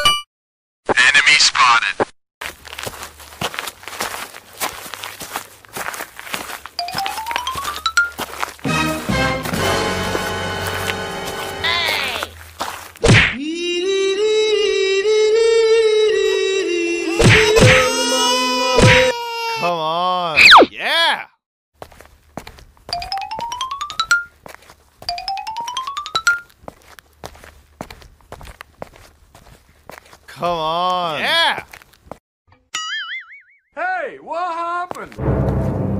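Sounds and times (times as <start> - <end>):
cartoon footsteps: 2.0 - 13.4, 17.2 - 19.1, 21.8 - 30.3, 34.6 - 35.9
cartoon footstep sound effects: 6.5 - 13.4, 17.2 - 18.0, 18.8 - 19.1, 22.4 - 24.2.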